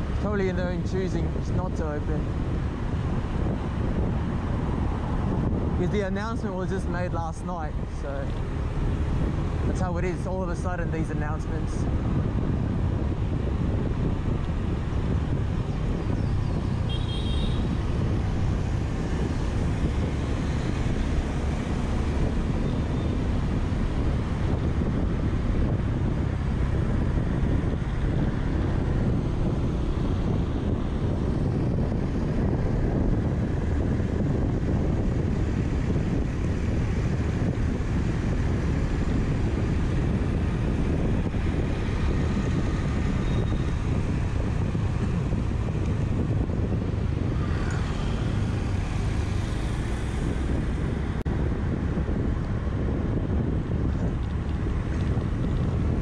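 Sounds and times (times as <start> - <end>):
road noise: 0.0 - 56.0
wind rumble on microphone: 0.0 - 56.0.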